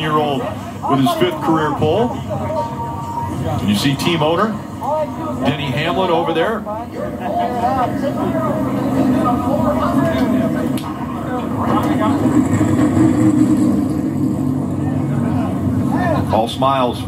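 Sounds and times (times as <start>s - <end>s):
indistinct voices: 0.0s - 17.0s
low rumble: 0.0s - 17.0s.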